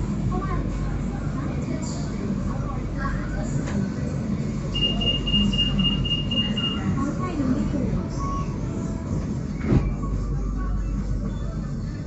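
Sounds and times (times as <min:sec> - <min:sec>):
train cabin low rumble: 0:00.0 - 0:12.0.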